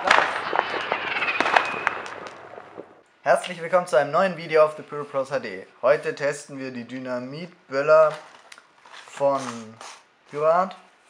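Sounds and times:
fireworks crackling and popping: 0:00.0 - 0:03.6.

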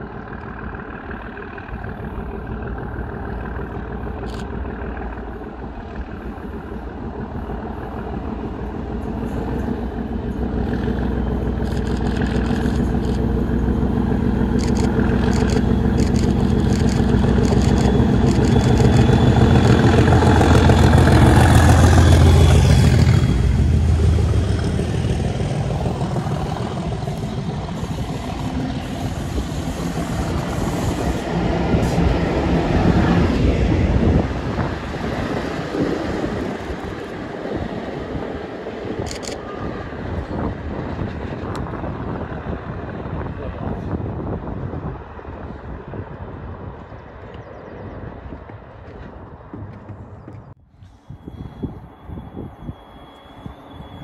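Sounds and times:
train wheel noise: 0:00.0 - 0:47.2
diesel locomotive passing: 0:00.0 - 0:54.0.

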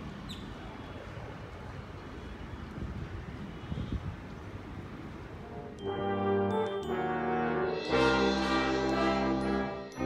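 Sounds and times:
brass music: 0:05.4 - 0:10.0.

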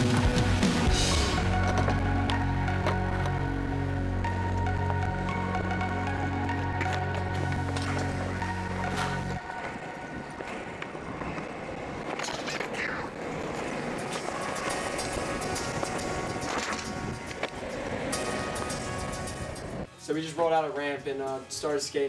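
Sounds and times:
background music: 0:00.0 - 0:12.3, 0:13.5 - 0:22.0
longboard wheels rolling on asphalt: 0:00.0 - 0:19.9.

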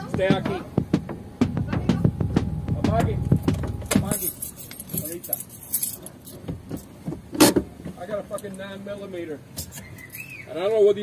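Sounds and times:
sharp knock: 0:00.0 - 0:04.2
muffled voices: 0:00.0 - 0:06.5
low engine rumble: 0:00.0 - 0:09.6
light jingling clicks: 0:03.9 - 0:06.9.

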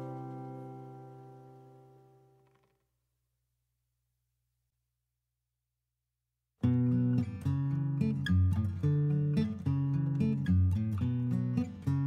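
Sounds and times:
acoustic guitar strumming chords: 0:00.0 - 0:02.6.

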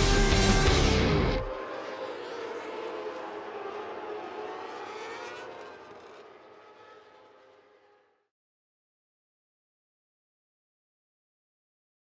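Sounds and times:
loud rock music: 0:00.0 - 0:01.5
racing motorcycle engines whining: 0:00.0 - 0:08.3.

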